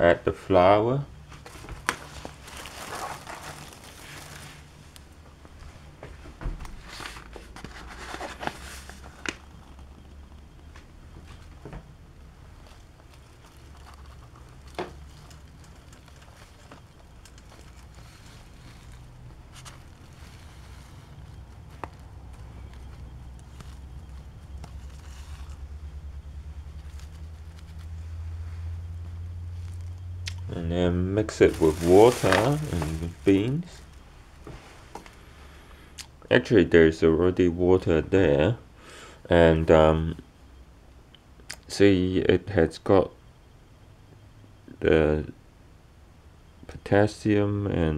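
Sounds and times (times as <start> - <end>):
steady low hum: 0.0 - 47.9
handling rustles: 1.2 - 11.8, 12.5 - 30.6, 31.2 - 35.2.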